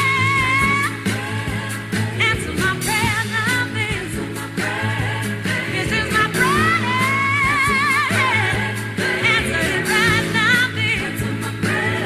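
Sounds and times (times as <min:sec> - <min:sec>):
pop music beat and bass: 0:00.0 - 0:12.0.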